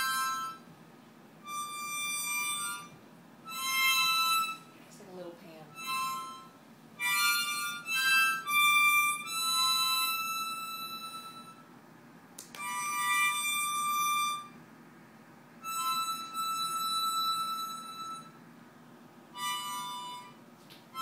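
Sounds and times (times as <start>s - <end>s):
child playing harmonica: 0.0s - 0.6s, 1.4s - 4.8s, 5.7s - 11.7s, 12.6s - 14.6s, 15.6s - 18.4s, 19.4s - 21.0s.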